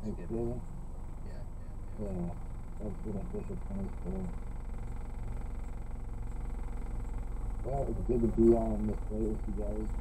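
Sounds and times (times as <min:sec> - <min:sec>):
car engine idling: 0:00.0 - 0:10.0
faint high-pitched whine: 0:00.0 - 0:10.0.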